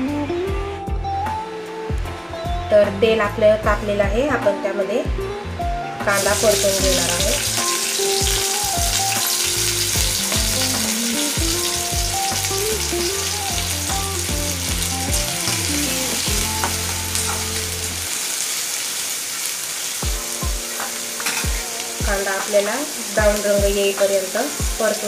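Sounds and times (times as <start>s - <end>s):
onions sizzling in hot oil: 6.1s - 25.0s.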